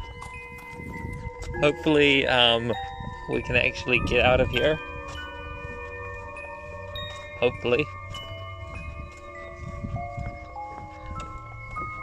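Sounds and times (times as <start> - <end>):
eerie bell-like chimes: 0.0 - 12.0.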